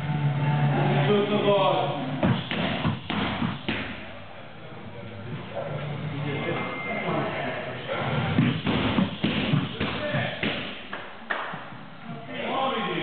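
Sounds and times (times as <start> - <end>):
punches and kicks on pads: 2.2 - 4.0, 8.4 - 10.8.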